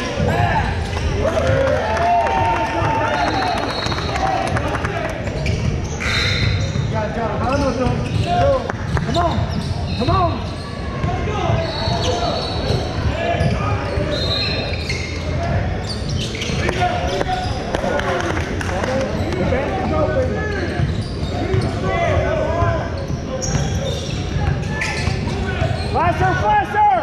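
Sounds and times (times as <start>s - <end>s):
sneakers squeaking: 0.0s - 1.6s, 2.6s - 26.4s.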